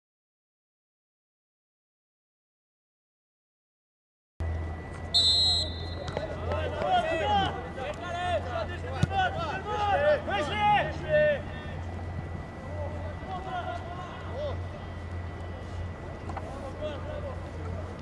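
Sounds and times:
low hum: 4.4s - 6.7s
high whistle: 5.1s - 6.2s
footballers shouting: 5.2s - 15.3s.

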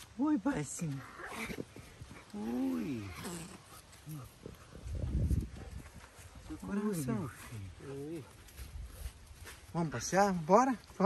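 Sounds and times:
young jaguars play-fighting: 0.0s - 9.7s.

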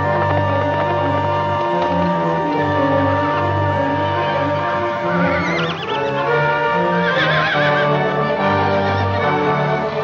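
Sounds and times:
orchestral film music: 0.0s - 10.0s
horse whinnying: 5.1s - 8.8s.

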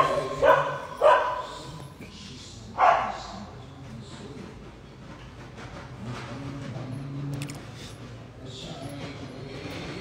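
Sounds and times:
dog barking: 0.0s - 1.6s, 2.8s - 3.3s.

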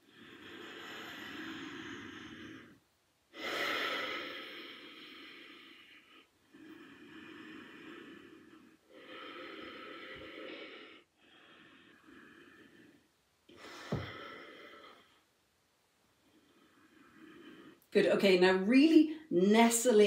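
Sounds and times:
woman breathing deeply: 0.0s - 15.4s, 16.2s - 17.9s.

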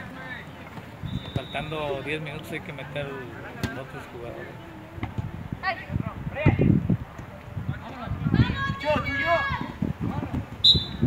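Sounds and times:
referee's whistle blast: 1.0s - 1.7s, 10.6s - 11.0s
players shouting: 8.3s - 9.8s.

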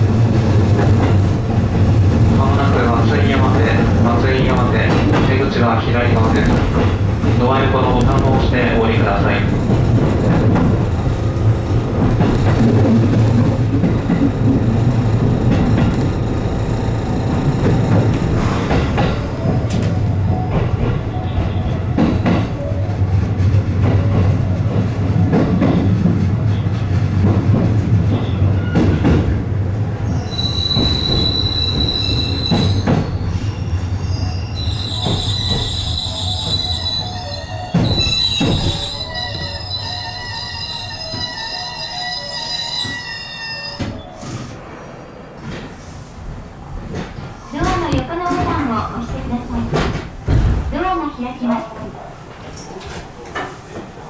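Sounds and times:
electric train on rails: 0.0s - 54.0s
wheel and brake squeal: 30.0s - 44.6s.

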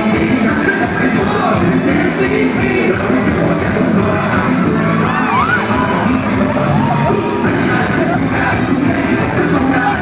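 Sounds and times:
loud live band music: 0.0s - 10.0s
audience shouts: 4.6s - 8.2s.

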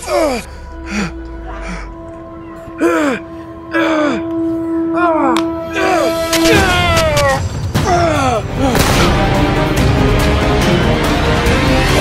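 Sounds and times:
man gasping cries: 2.8s - 6.2s.

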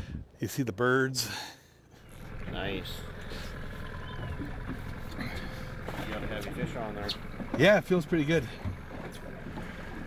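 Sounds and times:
boat engine idling: 1.8s - 10.0s.

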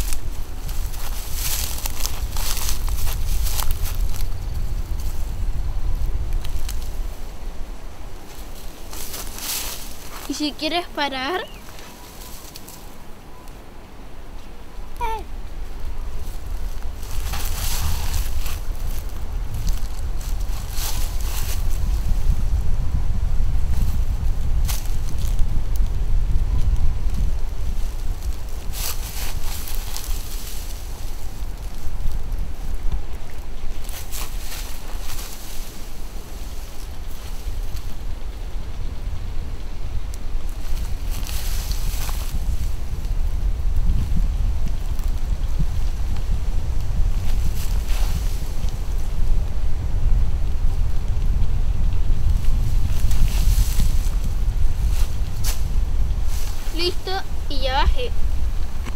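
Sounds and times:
rustling bursts: 0.0s - 5.4s, 6.1s - 13.1s, 16.1s - 22.4s, 27.0s - 43.4s, 51.9s - 58.9s
wind buffeting microphone: 0.0s - 58.9s.

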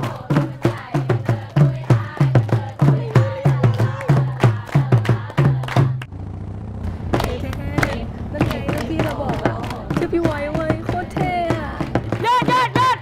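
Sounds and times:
conga drum beats: 0.0s - 6.0s, 7.1s - 13.0s
girls chanting a cheer: 0.0s - 6.0s, 7.2s - 13.0s
hand claps: 0.0s - 6.1s, 7.2s - 13.0s.

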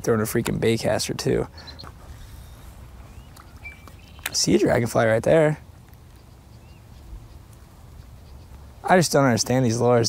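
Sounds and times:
small animals chirping: 1.6s - 4.8s, 6.1s - 9.4s.

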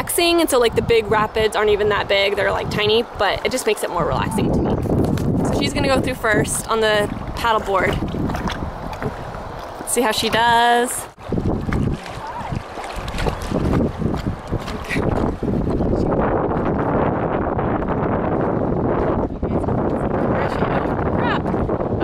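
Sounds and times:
wind buffeting the microphone: 0.0s - 22.0s.

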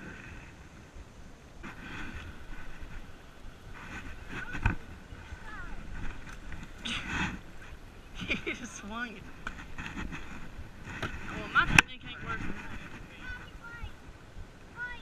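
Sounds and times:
wind on microphone: 0.0s - 15.0s.

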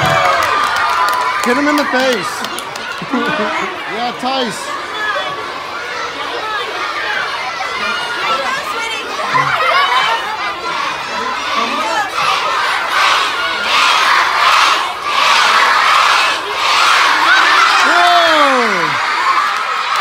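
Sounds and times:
children cheering and shouting: 0.0s - 20.0s.

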